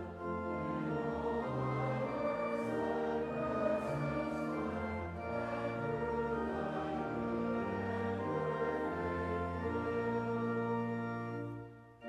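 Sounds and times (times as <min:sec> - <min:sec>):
choir singing a hymn: 0:00.0 - 0:11.7
instrumental accompaniment: 0:00.0 - 0:12.0.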